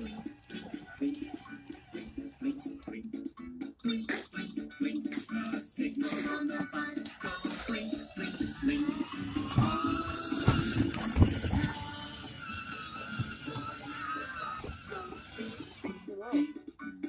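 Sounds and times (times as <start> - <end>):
children's song from toy speaker: 0.0 - 17.0.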